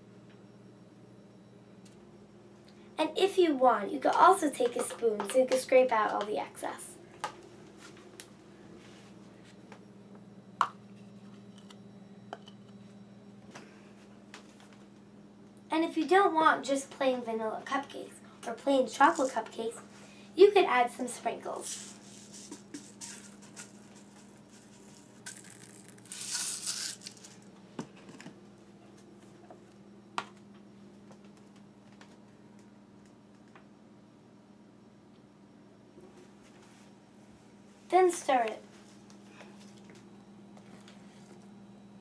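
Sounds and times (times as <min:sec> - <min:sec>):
faint steady hum: 0:00.0 - 0:42.0
sprinkles rattling in a shaker: 0:21.7 - 0:27.4
metal spoon scraping plastic cup: 0:24.6 - 0:27.4.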